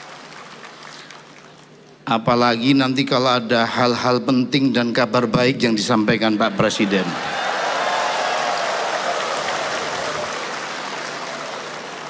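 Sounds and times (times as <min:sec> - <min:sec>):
audience applauding: 0:00.0 - 0:01.8, 0:06.6 - 0:12.0.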